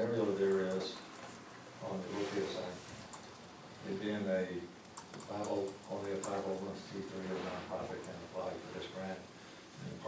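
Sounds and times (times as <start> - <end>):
laptop keyboard typing: 0.4 - 1.4, 3.0 - 3.5, 4.8 - 6.6.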